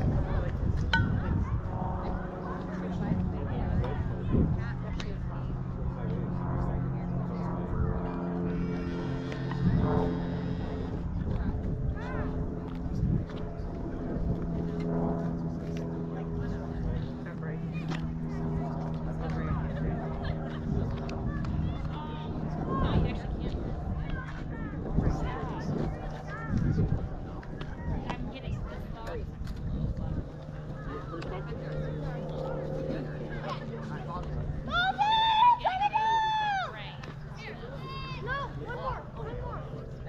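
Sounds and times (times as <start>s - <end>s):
faint distant voices: 0.0s - 40.0s
steady low motor hum: 0.0s - 40.0s.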